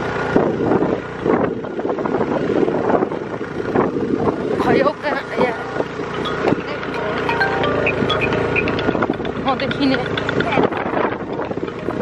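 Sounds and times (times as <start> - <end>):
motorbike engine running: 0.0 - 12.0
people talking: 4.5 - 7.8, 9.4 - 11.1.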